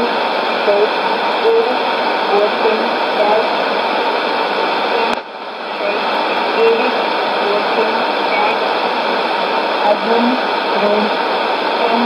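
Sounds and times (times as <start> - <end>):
faint woman reading numbers: 0.0 - 3.6, 4.9 - 8.6, 9.8 - 11.1, 11.8 - 12.0
radio static hiss: 0.0 - 12.0.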